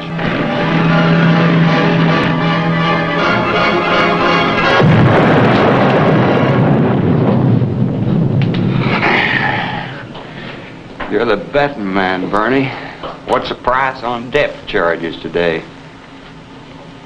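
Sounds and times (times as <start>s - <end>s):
music: 0.0s - 6.5s
depth charge explosion: 4.3s - 10.9s.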